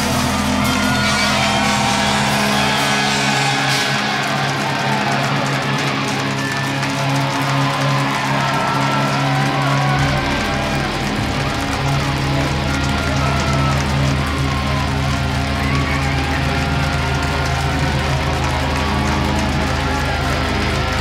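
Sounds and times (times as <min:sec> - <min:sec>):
distorted electric guitars droning: 0:00.0 - 0:21.0.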